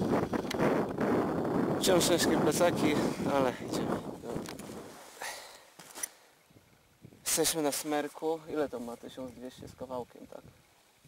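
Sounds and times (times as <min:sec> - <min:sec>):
camera handling rustle: 0:04.3 - 0:05.2, 0:05.8 - 0:06.2.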